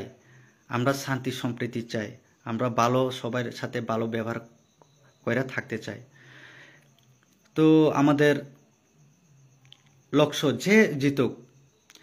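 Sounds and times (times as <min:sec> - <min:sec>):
man talking: 0:00.0 - 0:04.6, 0:05.2 - 0:06.1, 0:07.5 - 0:08.6, 0:10.1 - 0:11.5.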